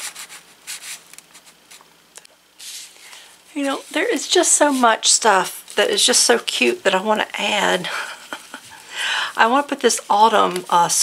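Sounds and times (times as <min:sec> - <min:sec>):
paper sliding against paper: 0:00.0 - 0:01.8, 0:02.6 - 0:04.9.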